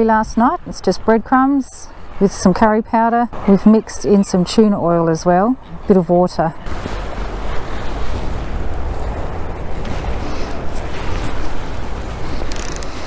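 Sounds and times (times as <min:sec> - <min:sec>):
open sea rushing: 0:05.7 - 0:13.0.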